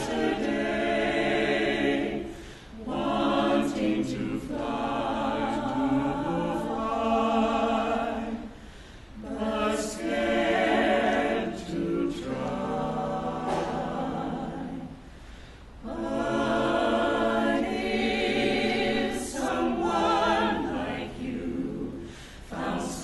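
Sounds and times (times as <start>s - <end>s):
vocal ensemble singing in harmony: 0.0s - 23.0s.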